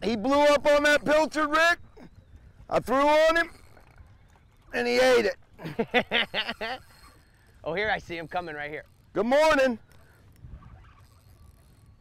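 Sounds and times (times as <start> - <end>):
fishing reel spinning: 2.2 - 12.0.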